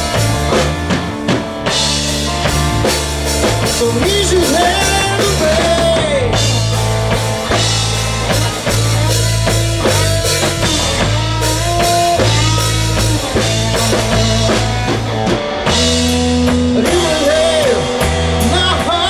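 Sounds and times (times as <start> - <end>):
bass line: 0.0 - 19.0
drum kit: 0.0 - 19.0
electric guitar lead: 0.0 - 19.0.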